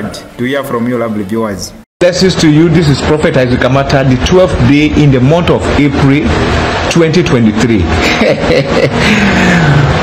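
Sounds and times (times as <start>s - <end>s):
man laughing: 7.9s - 10.0s.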